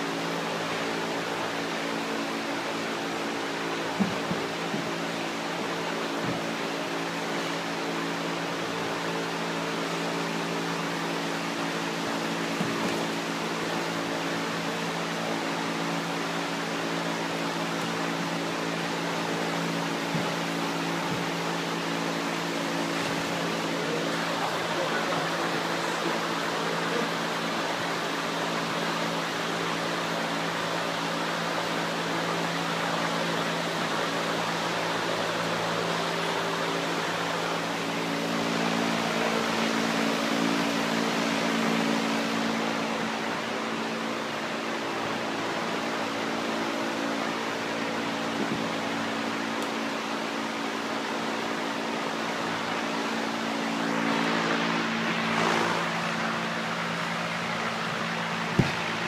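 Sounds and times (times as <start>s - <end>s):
ventilation and machinery hum: 0.0s - 59.0s.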